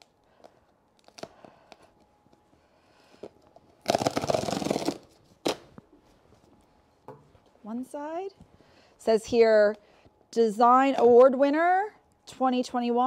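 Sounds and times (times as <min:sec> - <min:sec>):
cardboard tear strip ripping: 0:01.0 - 0:01.3, 0:03.8 - 0:05.7.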